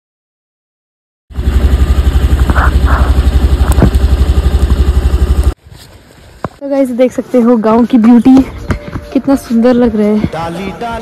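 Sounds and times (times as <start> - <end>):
scooter engine idling: 1.3 - 5.6.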